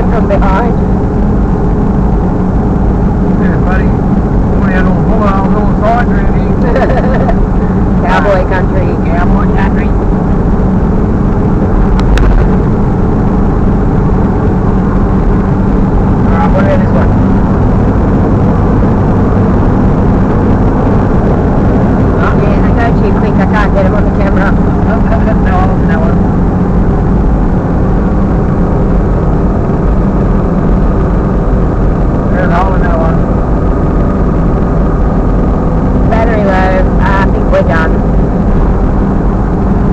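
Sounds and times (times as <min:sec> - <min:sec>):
car engine drone inside cabin: 0:00.0 - 0:39.9
tyre noise on road: 0:00.0 - 0:39.9.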